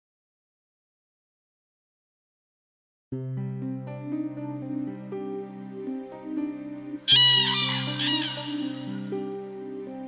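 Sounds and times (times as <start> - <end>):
gentle background music: 3.2 - 10.0
crane calls: 7.1 - 9.4.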